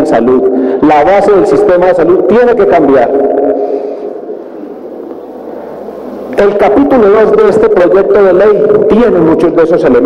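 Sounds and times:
microphone hiss: 0.0 - 10.0
faint low hum: 3.7 - 9.1.

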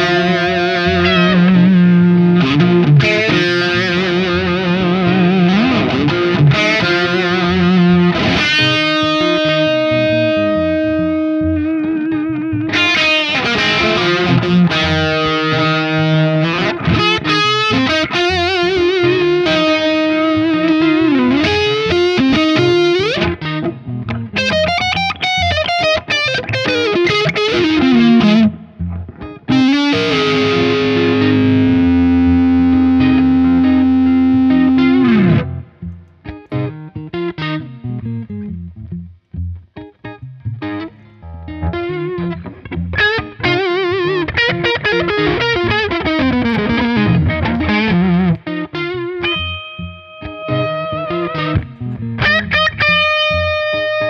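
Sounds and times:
distorted electric guitar lead: 0.0 - 54.0.

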